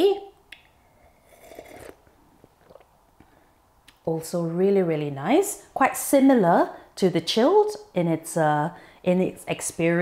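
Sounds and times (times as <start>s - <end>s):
person sipping from glass: 0.8s - 3.0s.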